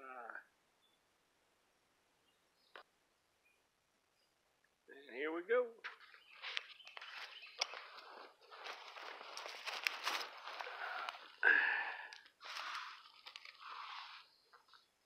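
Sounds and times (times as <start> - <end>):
footsteps in dry leaves: 6.1 - 11.4, 12.4 - 14.3.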